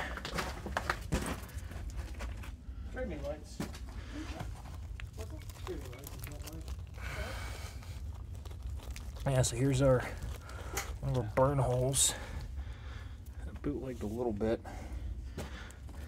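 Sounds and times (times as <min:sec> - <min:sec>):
steady low rumble: 0:01.4 - 0:16.0
rock fragments clicking: 0:04.7 - 0:07.2, 0:07.9 - 0:12.1.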